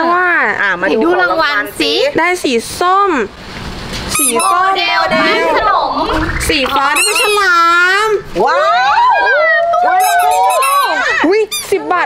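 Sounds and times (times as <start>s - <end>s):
people cheering woo: 8.4s - 11.2s.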